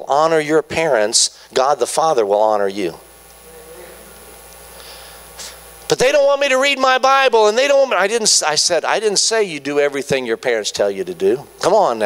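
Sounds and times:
man speaking amplified: 0.0 - 3.0, 5.9 - 12.0
sound system hum: 0.0 - 12.0.

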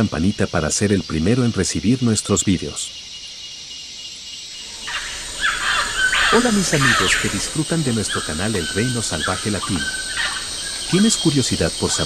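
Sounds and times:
sweeping bird calls: 0.6 - 12.0.

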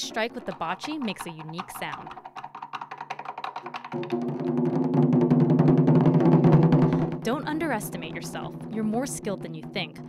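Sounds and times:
taiko drum roll: 0.2 - 10.0.

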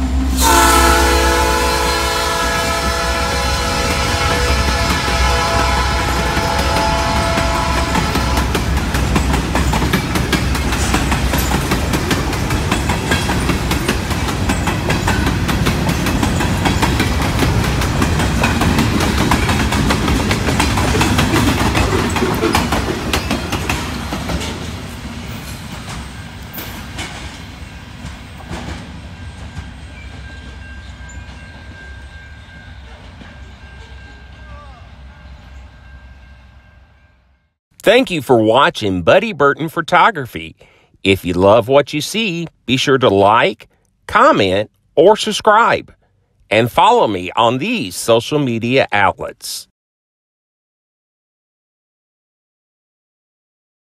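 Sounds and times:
train horn: 0.0 - 8.7, 32.5 - 37.4
freight train rolling past: 0.0 - 37.5
wheels clicking over rail joints: 5.8 - 32.1.

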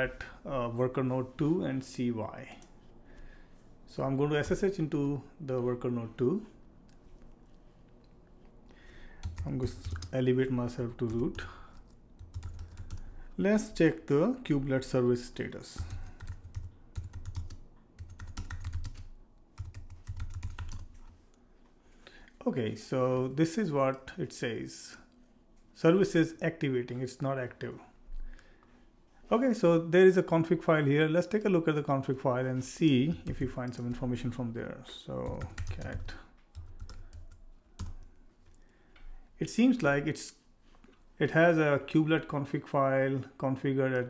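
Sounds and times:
typing on computer keyboard: 9.2 - 10.1, 11.1 - 13.1, 15.8 - 21.0, 35.2 - 38.1.

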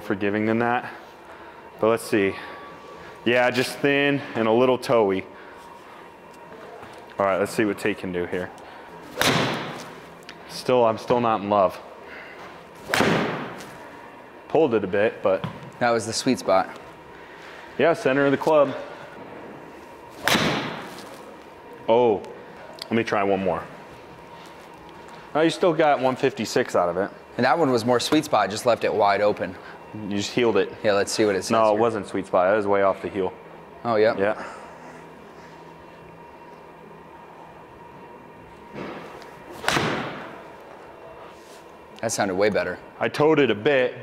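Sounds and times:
golf club striking ball: 9.2 - 9.9, 12.8 - 13.6, 20.2 - 21.0.

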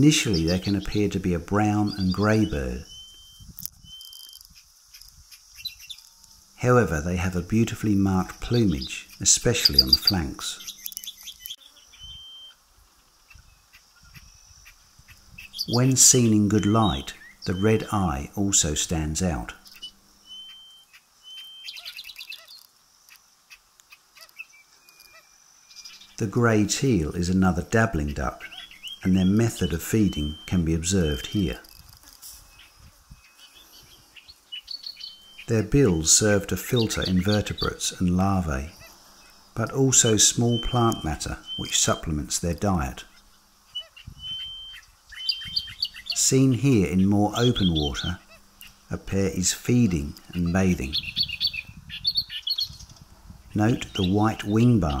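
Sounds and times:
high bird chirps: 1.7 - 6.4, 8.4 - 12.6, 13.3 - 18.1, 19.6 - 23.2, 23.9 - 26.2, 28.4 - 35.5, 38.7 - 42.0, 43.1 - 48.9, 49.8 - 55.0.

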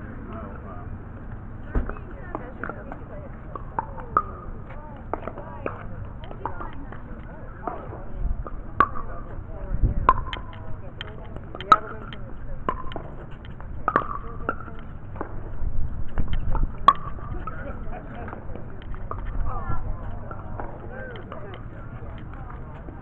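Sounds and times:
paddles hitting pickleball: 1.8 - 9.4, 10.0 - 23.0
ball bouncing on hard court: 13.8 - 15.5.

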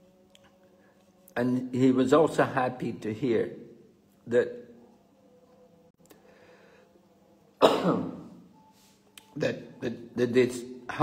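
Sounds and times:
man coughing loudly: 7.6 - 8.3.

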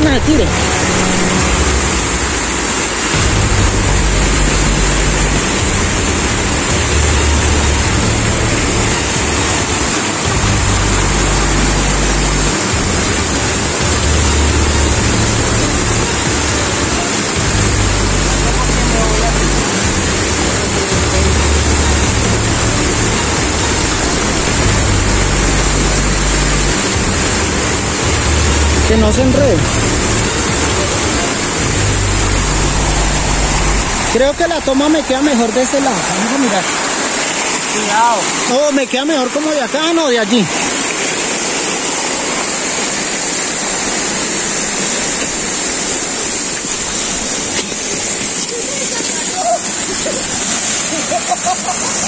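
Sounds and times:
low bassline background music: 0.0 - 48.1
waterfall rushing into pool: 0.0 - 52.0.

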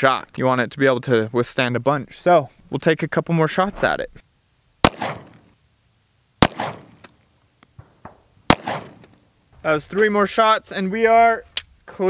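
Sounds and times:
pistol shots with echo: 4.8 - 5.5, 6.4 - 7.0, 7.8 - 9.1.

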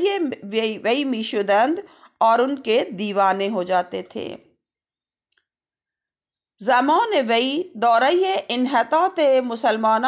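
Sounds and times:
woman's voice: 0.0 - 4.4, 6.6 - 10.0.

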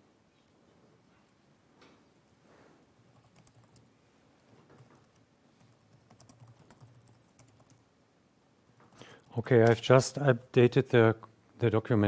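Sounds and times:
typing on a computer keyboard: 3.1 - 3.9, 4.7 - 7.8.

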